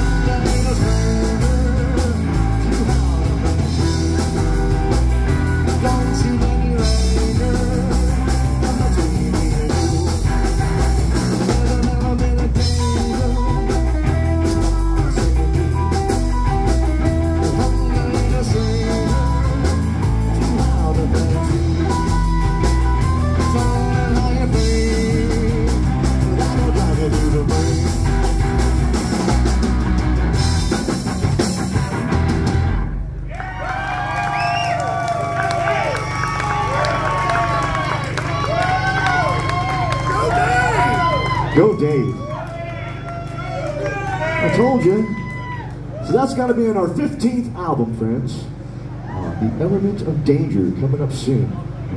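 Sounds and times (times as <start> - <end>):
slapped upright bass: 0.0 - 32.9
drum kit beat: 0.0 - 33.1
electric guitars: 0.0 - 33.4.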